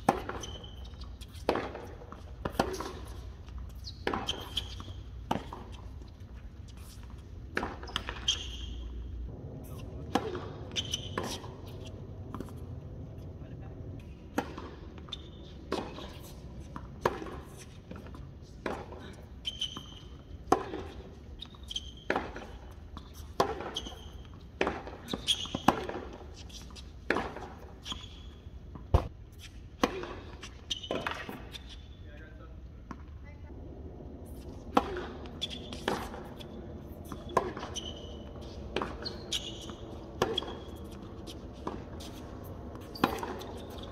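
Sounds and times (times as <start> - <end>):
tennis rackets hitting balls: 0.0 - 12.6, 14.0 - 31.8, 34.4 - 43.9
balls bouncing on hard court: 0.0 - 13.3, 14.3 - 29.2, 34.5 - 43.9.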